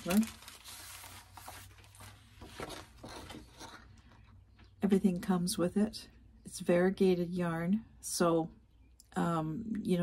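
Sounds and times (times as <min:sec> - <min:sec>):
paper and plastic rustling: 0:00.0 - 0:04.3.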